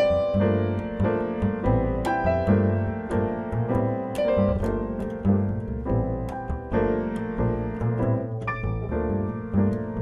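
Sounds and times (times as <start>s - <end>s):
jazz piano: 0.0s - 10.0s.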